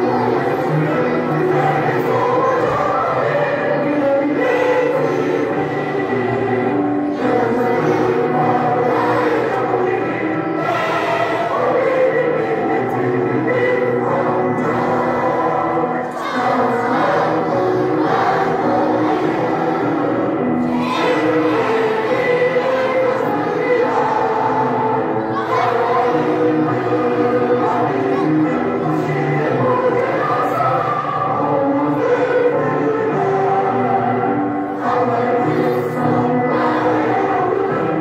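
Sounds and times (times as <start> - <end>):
children singing in chorus: 0.0 - 38.0.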